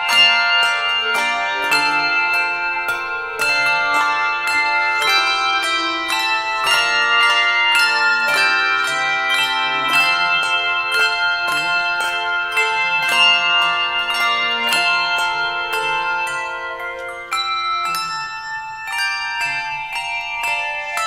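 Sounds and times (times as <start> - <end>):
handbells ringing: 0.0 - 21.0.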